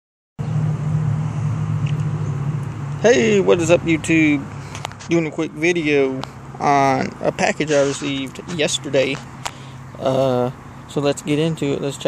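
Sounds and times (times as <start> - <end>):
low mechanical hum: 0.4 - 12.0.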